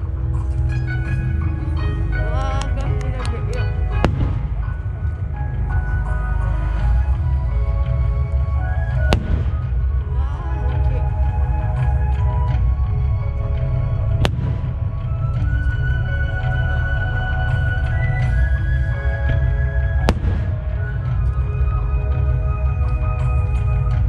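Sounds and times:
constant low rumble: 0:00.0 - 0:24.0
music playing: 0:00.0 - 0:24.0.

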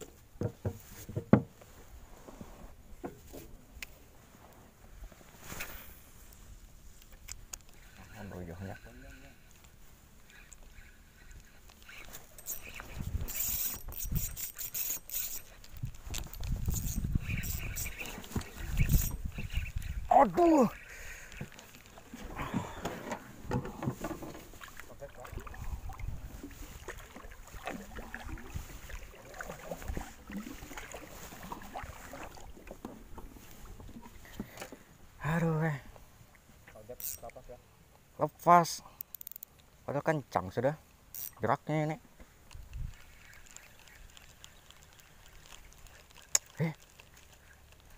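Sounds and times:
light knocks and rustles: 0:00.0 - 0:03.6, 0:21.3 - 0:24.9
water lapping against boat: 0:07.7 - 0:35.2, 0:42.1 - 0:47.9.

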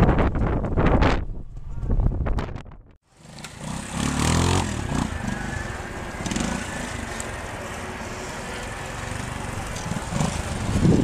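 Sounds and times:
motorcycle engine revving: 0:03.0 - 0:11.0.

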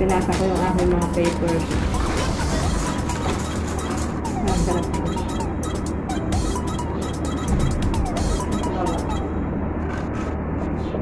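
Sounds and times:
faint background music: 0:00.0 - 0:11.0
steady low hum: 0:00.0 - 0:11.0.

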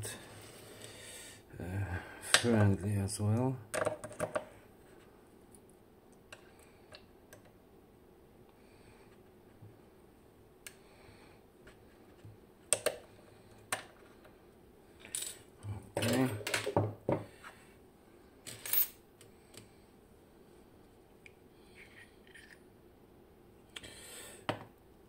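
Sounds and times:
small metal parts clinking: 0:15.0 - 0:16.7, 0:18.4 - 0:19.0.

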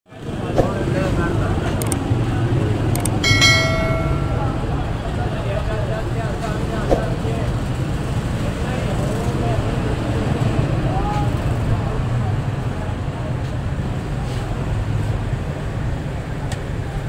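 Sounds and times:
murmur of crowd voices: 0:00.1 - 0:17.0
traffic rumble: 0:00.1 - 0:17.0
bright ringing tone: 0:03.2 - 0:05.0.

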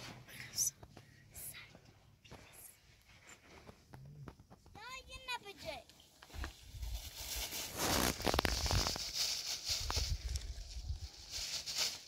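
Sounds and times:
faint whispering: 0:00.2 - 0:02.8.

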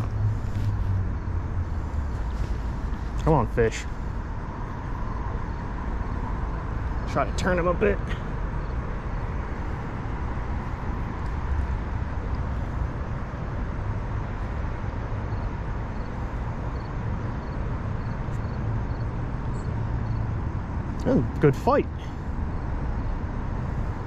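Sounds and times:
distant road traffic: 0:00.0 - 0:24.0.

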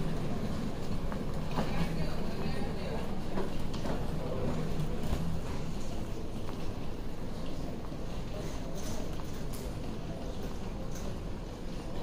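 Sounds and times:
busy concourse background noise: 0:00.0 - 0:12.0.

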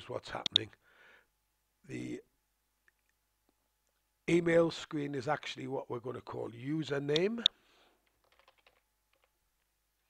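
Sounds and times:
computer mouse clicks: 0:00.4 - 0:00.6.

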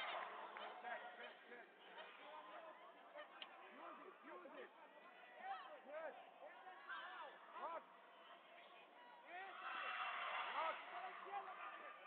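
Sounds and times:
voices shouting in a sports hall: 0:00.0 - 0:12.0.

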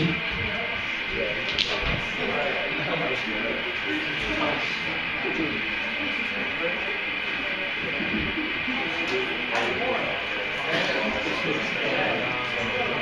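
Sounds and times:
crowd chatting: 0:00.0 - 0:13.0.

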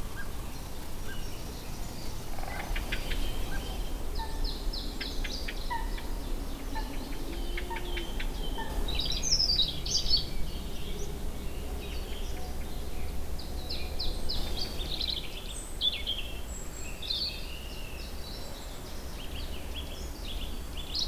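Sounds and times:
songbirds chirping and trilling: 0:00.0 - 0:21.0
low rumble: 0:01.6 - 0:15.5.

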